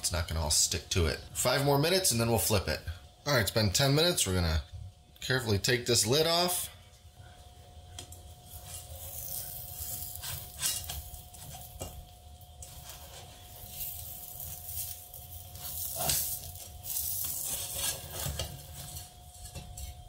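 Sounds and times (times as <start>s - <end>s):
faint sizzle: 0.0s - 20.0s
spatula scraping frying pan: 8.6s - 12.0s, 12.6s - 19.9s.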